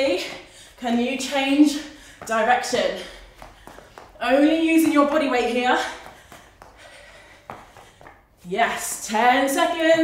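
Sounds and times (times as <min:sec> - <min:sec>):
trainers shuffling on exercise mat: 0:02.0 - 0:08.8.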